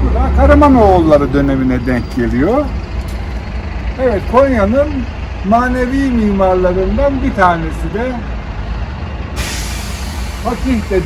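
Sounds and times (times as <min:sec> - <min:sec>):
bus diesel engine idling: 0:00.0 - 0:11.0
air brake hissing: 0:09.4 - 0:11.0.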